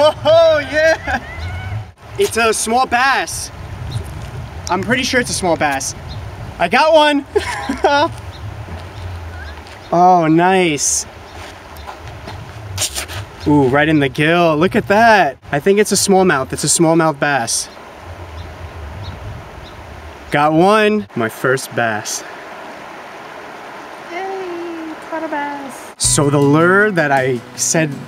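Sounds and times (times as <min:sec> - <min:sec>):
wind buffeting microphone: 0:00.0 - 0:21.0
outdoor hiss: 0:00.0 - 0:28.0.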